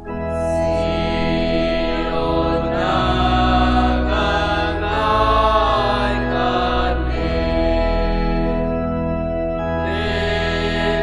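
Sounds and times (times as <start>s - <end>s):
voices singing a hymn: 0.0s - 9.0s, 9.6s - 11.0s
sustained instrumental chords: 0.0s - 11.0s.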